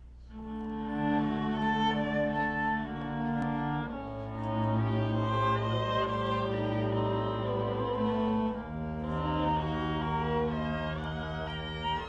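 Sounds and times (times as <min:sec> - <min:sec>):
faint low electrical hum: 0:00.0 - 0:12.0
orchestral bowed strings: 0:00.0 - 0:12.0.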